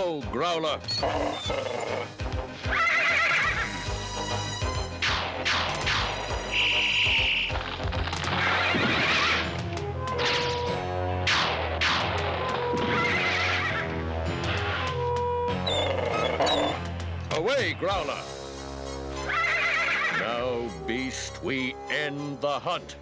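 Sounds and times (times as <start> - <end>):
cartoon background music: 0.0 - 23.0
unicorn whinnying: 0.9 - 3.8, 12.9 - 14.0, 15.5 - 16.9, 18.9 - 20.3.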